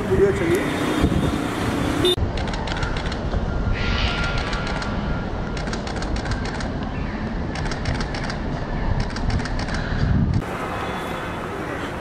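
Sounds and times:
street traffic noise: 0.0 - 12.0
rapid sharp clicks: 5.6 - 6.7.

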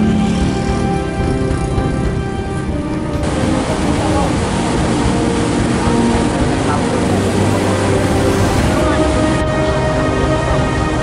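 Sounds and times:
low rumbling noise: 0.0 - 10.4
crowd chatter: 3.2 - 10.8.

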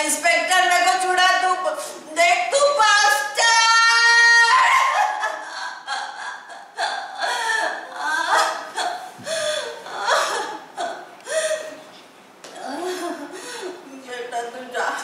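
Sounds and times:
woman wailing: 3.4 - 11.7
woman crying and laughing: 3.7 - 11.8, 12.6 - 13.9.

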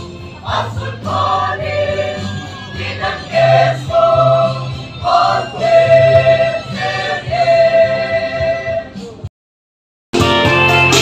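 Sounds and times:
mixed choir singing: 0.0 - 9.0.

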